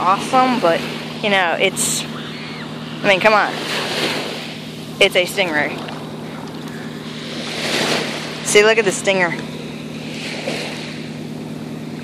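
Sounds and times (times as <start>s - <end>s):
constant low hum: 0.0s - 12.0s
surf washing: 0.0s - 12.0s.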